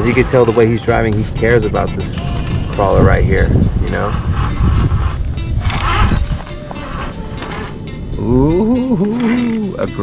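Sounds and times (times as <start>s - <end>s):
background music: 0.0s - 10.0s
heavy low rumble: 1.1s - 8.8s.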